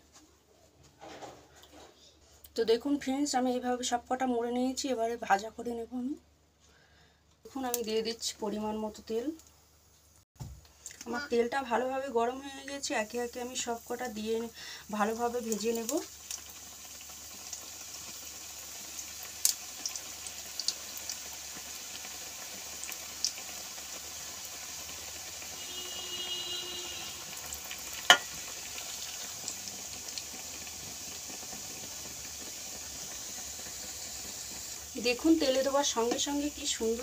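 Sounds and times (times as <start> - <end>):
dumplings sizzling in hot oil: 11.0 - 37.0
oil popping: 24.9 - 36.4.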